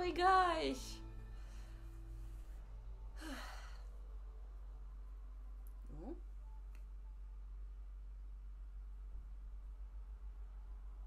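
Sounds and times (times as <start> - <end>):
steady low hum: 0.0 - 11.0
woman sighing: 3.2 - 3.9.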